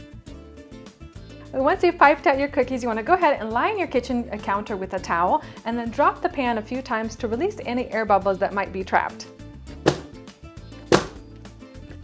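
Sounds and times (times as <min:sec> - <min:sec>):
background music: 0:00.0 - 0:12.0
baking sheet knocking on counter: 0:09.8 - 0:10.2, 0:10.9 - 0:11.2.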